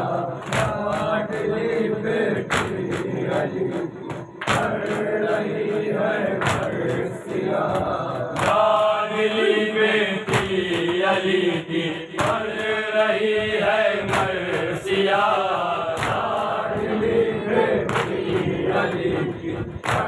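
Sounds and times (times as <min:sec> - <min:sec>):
men chanting in unison: 0:00.0 - 0:20.0
hands slapping chests: 0:00.4 - 0:01.2, 0:02.5 - 0:03.1, 0:04.4 - 0:05.0, 0:06.4 - 0:07.0, 0:16.0 - 0:16.4, 0:17.9 - 0:18.4.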